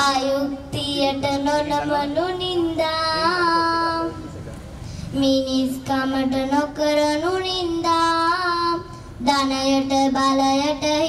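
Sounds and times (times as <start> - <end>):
girl singing into a microphone: 0.0 - 4.3, 5.0 - 11.0.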